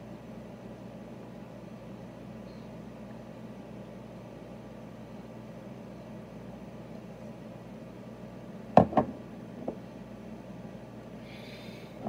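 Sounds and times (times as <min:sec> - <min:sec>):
low room hum and hiss: 0:00.0 - 0:12.0.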